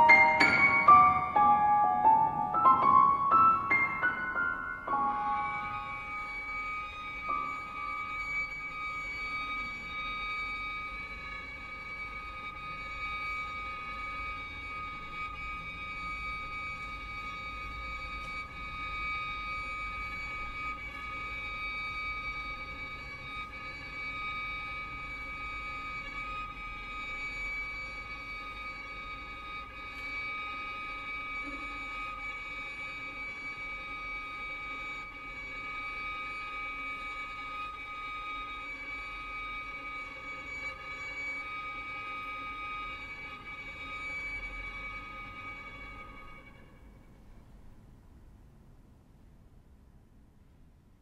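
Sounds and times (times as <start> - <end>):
high steady ensemble tones: 0.0 - 17.9.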